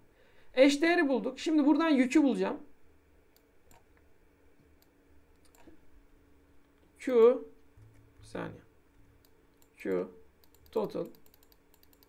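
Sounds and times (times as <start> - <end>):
faint low hum: 0.0 - 12.0
faint clicks: 10.4 - 12.0.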